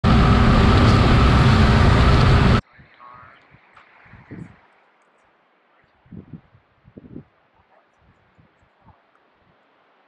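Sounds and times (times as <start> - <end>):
motorcycle engine at speed: 0.0 - 2.6
wind noise: 0.0 - 4.7, 5.9 - 9.6.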